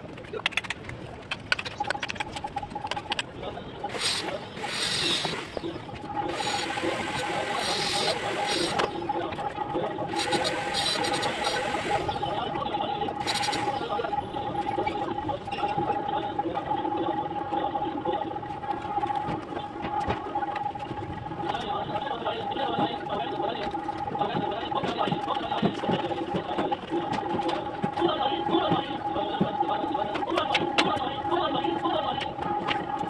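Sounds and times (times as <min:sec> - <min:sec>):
steady humming tone: 0:00.0 - 0:33.0.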